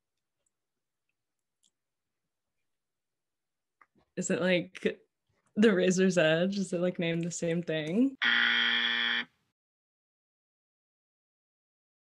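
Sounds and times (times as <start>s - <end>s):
wrong-answer buzzer: 8.2s - 9.3s.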